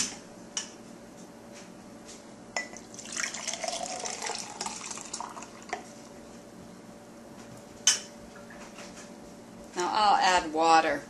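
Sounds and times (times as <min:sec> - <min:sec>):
glass clinking: 0:02.6 - 0:02.8
liquid pouring into glass jar: 0:02.8 - 0:05.8.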